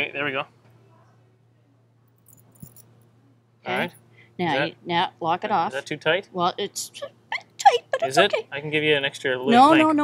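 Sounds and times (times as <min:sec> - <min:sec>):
chain and padlock clinking: 0:02.2 - 0:02.9.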